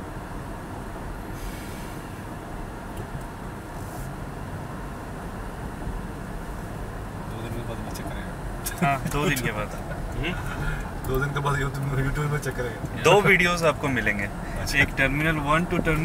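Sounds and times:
road and engine noise in car cabin: 0.0 - 16.0.

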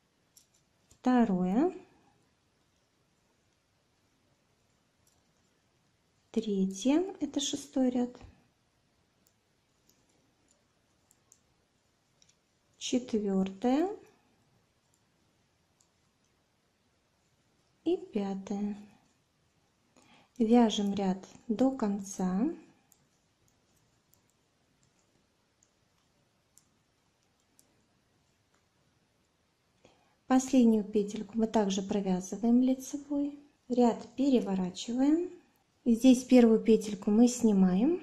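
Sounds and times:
knitting needles clicking: 0.2 - 1.1, 4.7 - 5.4, 9.2 - 12.8, 15.7 - 16.4, 22.7 - 28.8
metal knitting needles clicking: 0.3 - 1.1, 12.2 - 12.4.

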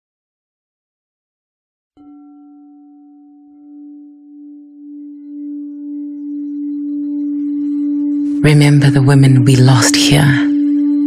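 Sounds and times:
sustained ringing tone: 2.0 - 11.0.

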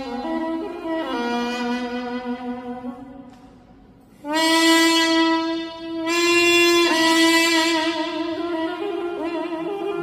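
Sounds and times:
double-reed pipe solo: 0.0 - 3.4, 4.1 - 10.0.

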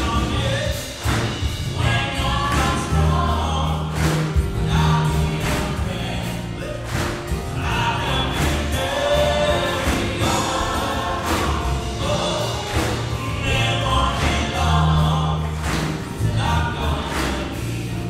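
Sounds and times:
gospel band playing: 0.0 - 18.0
man and woman singing together: 0.0 - 18.0.

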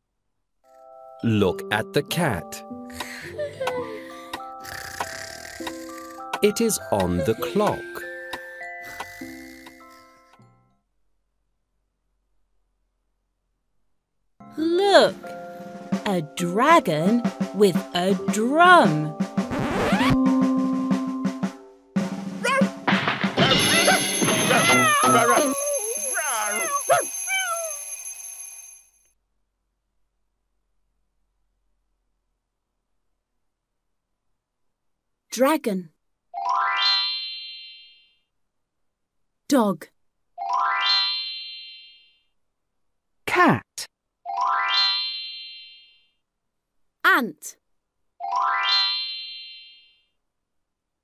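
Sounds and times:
sliding cartoon animal cries: 4.6 - 6.4, 23.5 - 27.9
cat yowling: 23.5 - 27.9
alarm clock bell ringing: 23.5 - 29.0.

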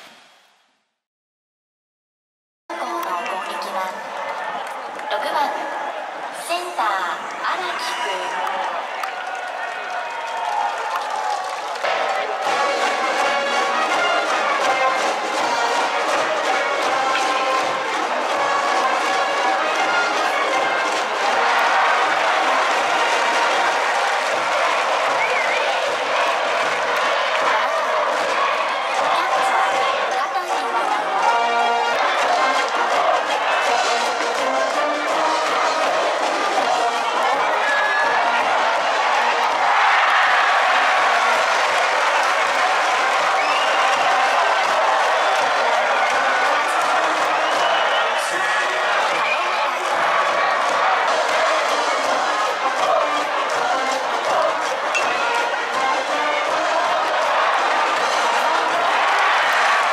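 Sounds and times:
crowd cheering: 2.7 - 59.9
brass band playing: 11.9 - 38.7, 49.6 - 59.9.

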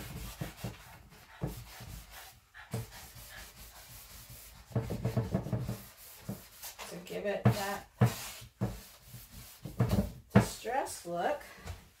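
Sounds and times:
sanding block rubbing: 1.5 - 6.9.

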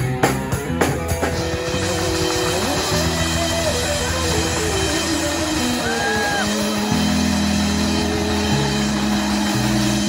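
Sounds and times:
rock band sustained chords: 0.0 - 10.0.

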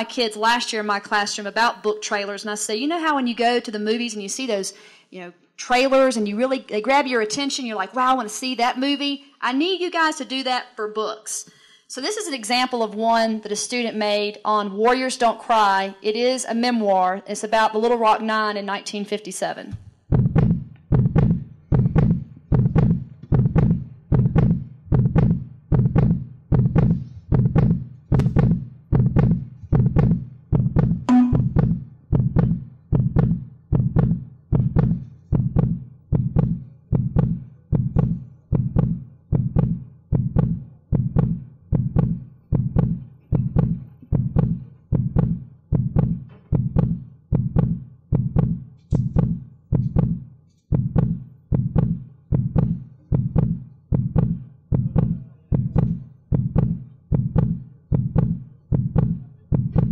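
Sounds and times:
heartbeat-like low thuds: 19.8 - 59.9.

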